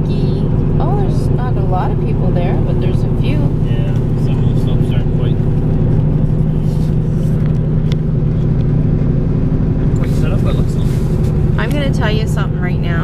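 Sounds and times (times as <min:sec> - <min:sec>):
car road and engine drone: 0:00.0 - 0:13.0.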